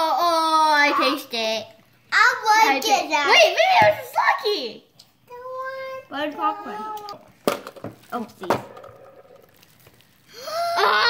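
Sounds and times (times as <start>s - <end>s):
child exclaiming: 5.3s - 7.2s, 10.4s - 11.0s.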